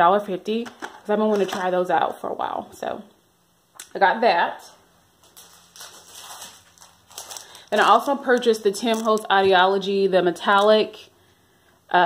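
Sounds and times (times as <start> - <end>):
plastic packaging crinkling: 5.2 - 9.5.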